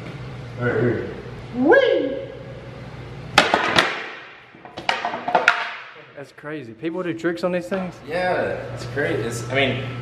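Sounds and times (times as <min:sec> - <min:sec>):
wooden board knocking on floor: 0:03.4 - 0:05.8.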